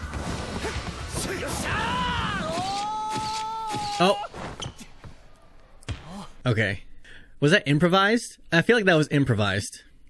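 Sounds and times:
person shouting: 0:01.2 - 0:04.3.

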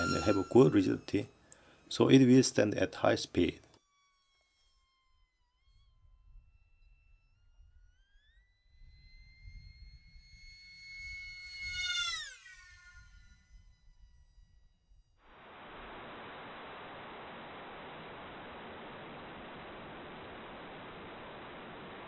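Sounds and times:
electric motor whining overhead: 0:00.0 - 0:22.0.

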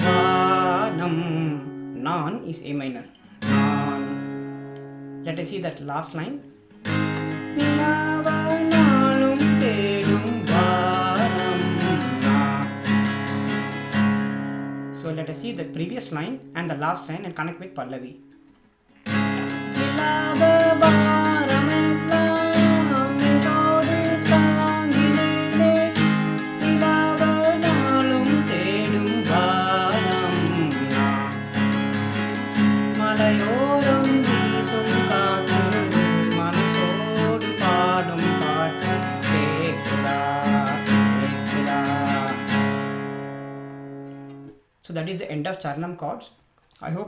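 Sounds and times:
man singing: 0:00.0 - 0:04.4, 0:07.4 - 0:13.2, 0:19.6 - 0:42.8
acoustic guitar strumming: 0:00.0 - 0:44.8.

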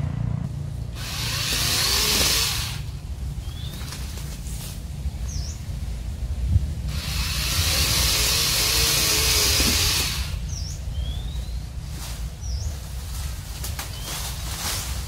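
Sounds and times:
loud rushing hiss: 0:00.0 - 0:03.8, 0:04.4 - 0:10.8
steady low rumble: 0:00.0 - 0:15.0
bird chirps: 0:03.4 - 0:04.0, 0:10.4 - 0:11.7.

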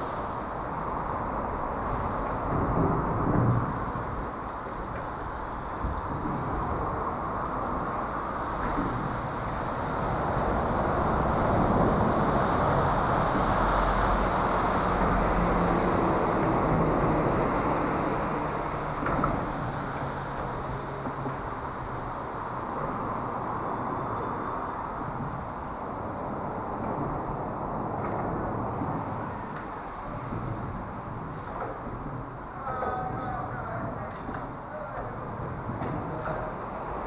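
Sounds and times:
road traffic rumble overhead: 0:00.0 - 0:37.0.

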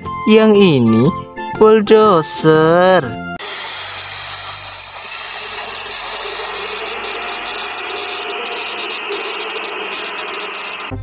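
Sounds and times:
bulldozer diesel engine under load: 0:03.4 - 0:10.8.

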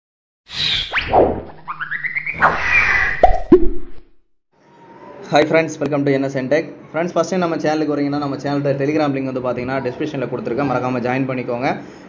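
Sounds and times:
rising run of short tones: 0:00.5 - 0:04.1
loud pops dropping in pitch: 0:03.2 - 0:04.2.

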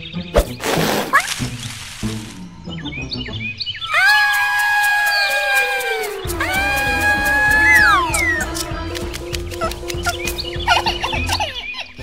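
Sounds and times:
cartoon music: 0:03.9 - 0:12.0.

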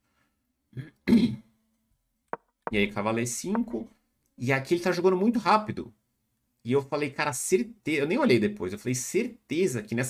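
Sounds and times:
man clearing throat: 0:00.8 - 0:01.5.

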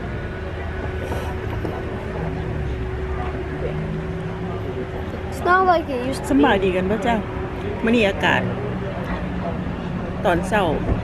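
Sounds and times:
faint murmur of voices: 0:00.0 - 0:11.0.

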